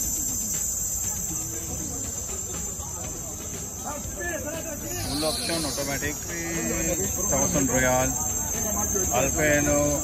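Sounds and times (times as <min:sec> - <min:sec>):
people talking faintly: 0:00.0 - 0:10.0
steady high-pitched hiss: 0:00.0 - 0:10.0.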